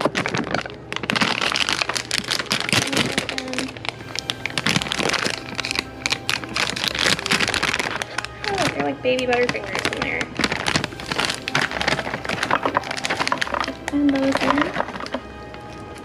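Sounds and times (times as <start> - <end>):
plastic snack bag crinkling: 0.0 - 16.0.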